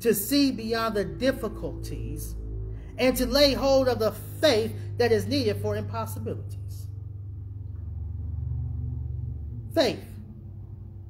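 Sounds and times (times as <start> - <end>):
low bass notes of music: 0.0 - 11.0.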